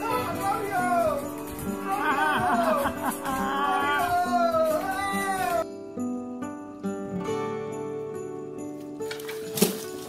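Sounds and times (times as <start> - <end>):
background music: 0.0 - 10.0
tree falling crash: 9.2 - 10.0.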